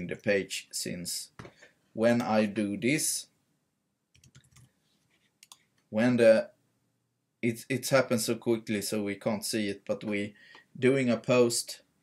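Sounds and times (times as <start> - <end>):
keyboard typing: 4.1 - 4.8, 5.4 - 5.7.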